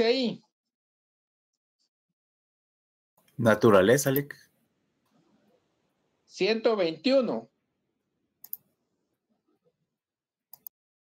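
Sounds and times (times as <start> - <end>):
sharp clicks: 8.4 - 8.6, 10.5 - 10.8.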